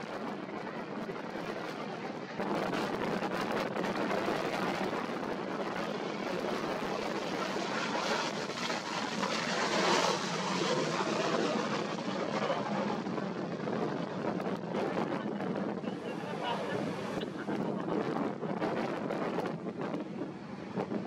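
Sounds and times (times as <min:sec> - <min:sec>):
jet engines roaring: 0:00.0 - 0:21.0.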